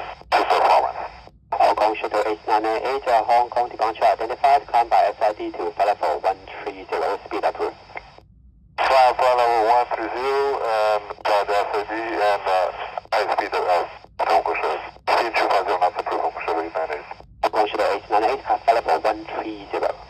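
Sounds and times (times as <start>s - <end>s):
radio voice transmissions: 0.0s - 8.2s, 8.8s - 20.0s.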